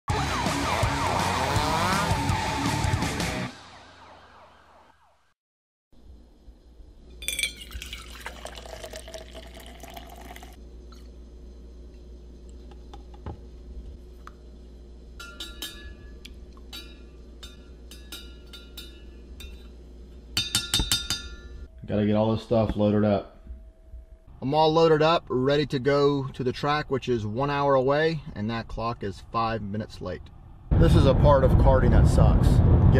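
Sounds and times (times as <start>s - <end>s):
metal spoon clinking cup: 7.2s - 10.5s, 15.2s - 19.7s, 20.4s - 21.6s
liquid pouring into metal cup: 7.2s - 11.1s.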